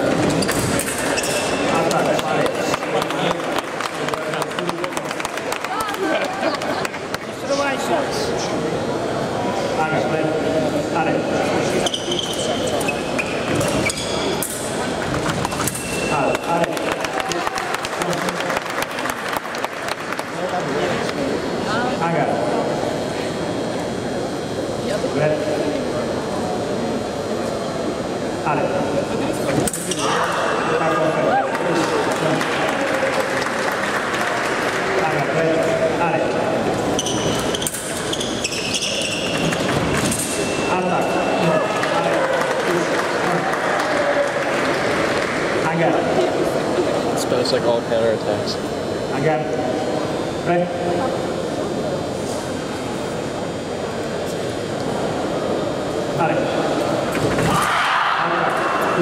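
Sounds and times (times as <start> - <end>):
voices in a large hall: 0.0 - 59.0.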